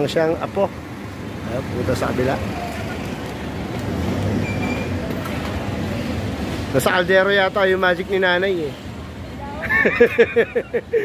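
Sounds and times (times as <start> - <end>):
vehicle engines rumbling: 0.0 - 11.0.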